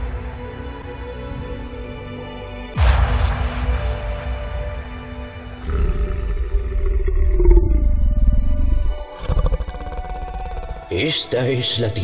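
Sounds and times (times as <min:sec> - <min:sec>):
dramatic trailer rumbling swell: 0:02.8 - 0:11.4.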